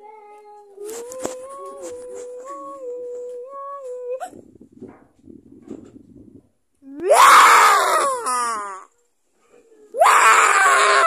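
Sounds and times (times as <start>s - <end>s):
boy screaming: 6.9s - 8.9s, 10.0s - 11.0s.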